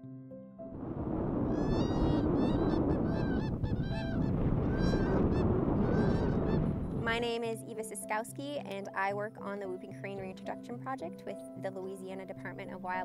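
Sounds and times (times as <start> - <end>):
steady rushing noise: 0.7 - 7.2
cranes bugling whoops: 1.4 - 6.7.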